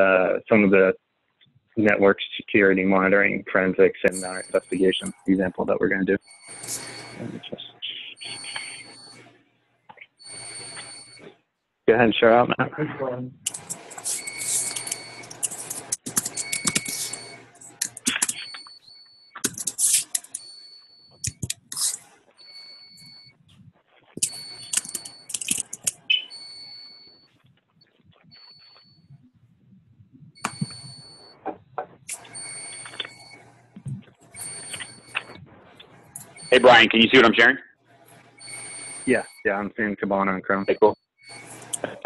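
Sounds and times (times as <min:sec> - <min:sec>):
high-pitched tone: 0:32.1 - 0:37.4.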